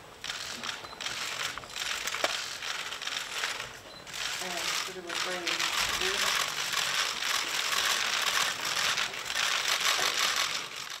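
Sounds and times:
camera shutters clicking rapidly: 0.2s - 11.0s.

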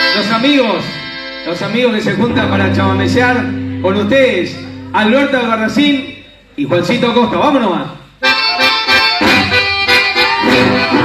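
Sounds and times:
acoustic guitar: 1.0s - 5.7s
button accordion melody: 8.2s - 11.0s.

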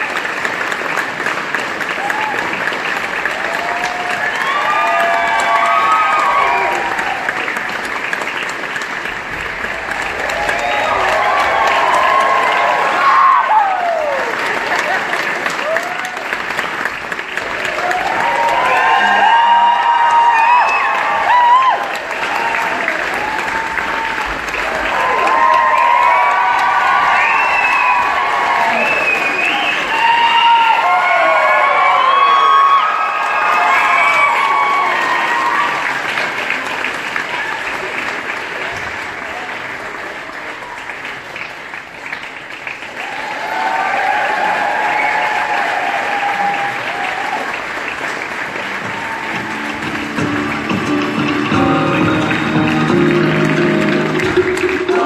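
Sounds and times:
audience applauding: 0.0s - 55.0s
crowd whooping: 2.0s - 2.6s, 3.3s - 7.7s, 9.7s - 16.4s, 17.4s - 36.1s, 43.0s - 47.7s, 48.6s - 55.0s
music: 48.8s - 55.0s.

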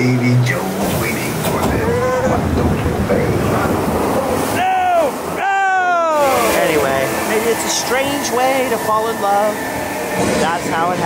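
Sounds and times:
water rushing along flume: 0.0s - 11.0s
person whooping: 4.6s - 6.6s.

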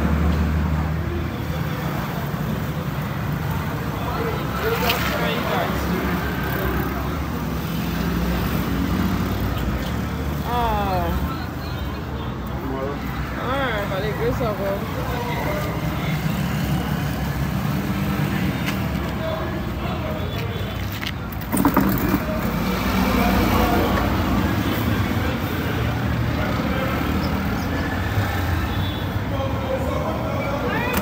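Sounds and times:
sharp knock: 21.5s - 22.6s.

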